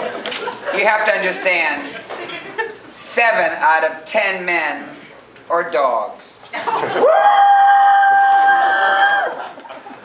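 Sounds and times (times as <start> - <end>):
man's falsetto woo cry: 7.0 - 9.4.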